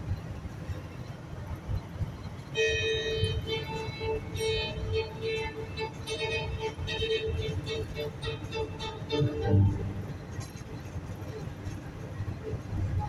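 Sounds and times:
car driving on road: 0:00.0 - 0:13.0
classical music: 0:02.8 - 0:10.3.

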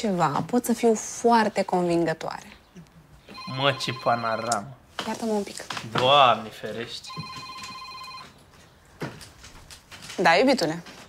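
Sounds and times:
mobile phone ringtone: 0:03.2 - 0:04.8, 0:07.0 - 0:08.4.

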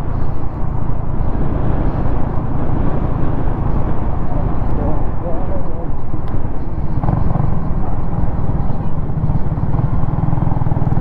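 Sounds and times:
motorcycle engine running: 0:00.0 - 0:11.0
wind rushing on microphone: 0:00.0 - 0:11.0.

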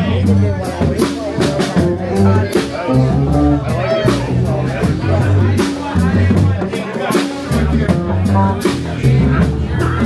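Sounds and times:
live blues band playing: 0:00.0 - 0:10.0.

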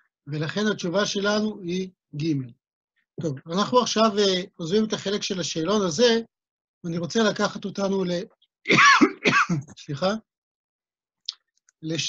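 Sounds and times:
man clearing his throat: 0:08.7 - 0:09.8.

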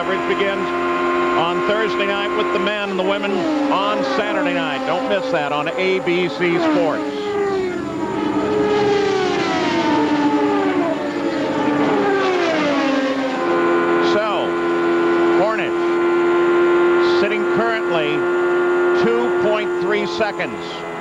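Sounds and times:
onboard race car engine: 0:00.0 - 0:21.0
race cars passing by: 0:00.0 - 0:21.0.

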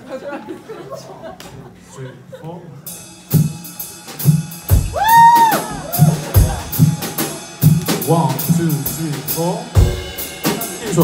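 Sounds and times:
man laughing: 0:00.1 - 0:02.7
drum kit playing a beat: 0:02.8 - 0:11.0
kick drum hit: 0:04.7 - 0:07.0.

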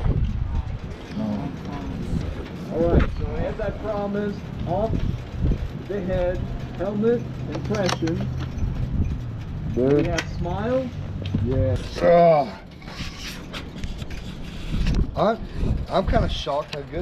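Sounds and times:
voices talking: 0:00.5 - 0:12.8.

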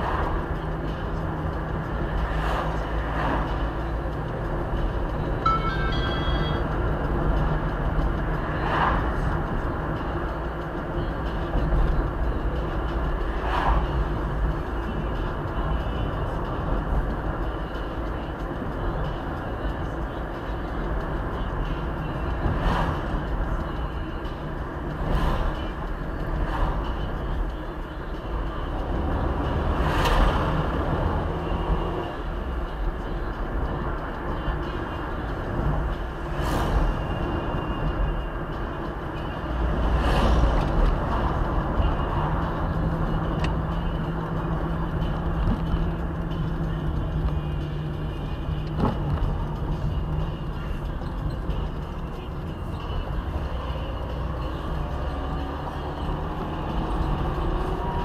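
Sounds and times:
tyres and engine rumble: 0:00.0 - 0:58.0.

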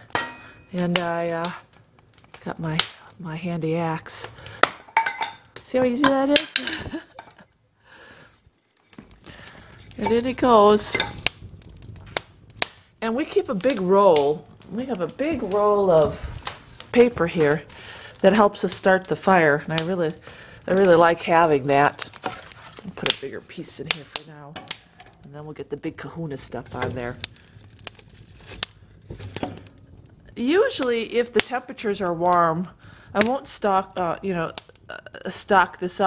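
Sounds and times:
sharp pops of fire: 0:00.0 - 0:03.3, 0:04.1 - 0:07.5, 0:08.2 - 0:25.4, 0:26.2 - 0:35.0
fire crackling in woodstove: 0:00.0 - 0:36.0
quiet hiss: 0:00.0 - 0:36.0
firewood knocking in stove: 0:09.9 - 0:12.8, 0:29.1 - 0:29.8.

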